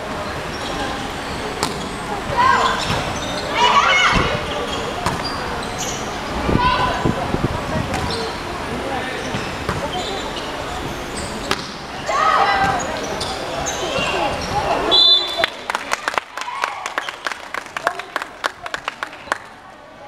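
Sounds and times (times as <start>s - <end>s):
referee's whistle: 14.9s - 15.5s.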